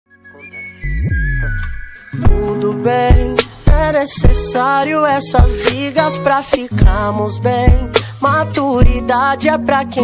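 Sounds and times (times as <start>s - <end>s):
high whistle-like synth note: 0.1s - 2.4s
deep bass swell: 0.8s - 1.9s.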